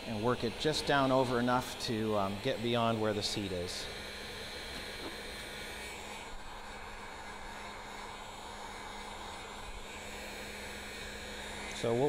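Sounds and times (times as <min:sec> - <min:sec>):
heat gun fan humming: 0:00.0 - 0:12.0.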